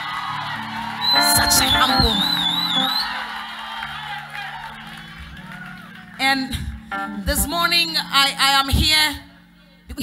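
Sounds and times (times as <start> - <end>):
soft keyboard chords: 6.6 - 9.4.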